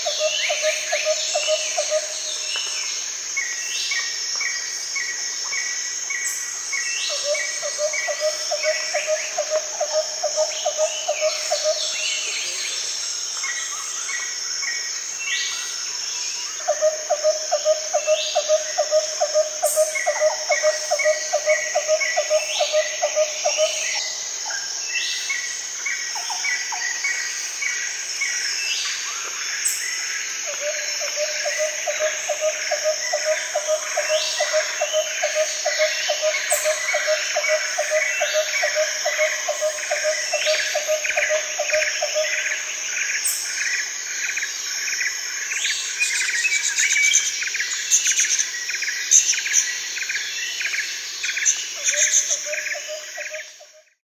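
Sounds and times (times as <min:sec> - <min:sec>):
high insect drone: 0:00.0 - 0:54.0.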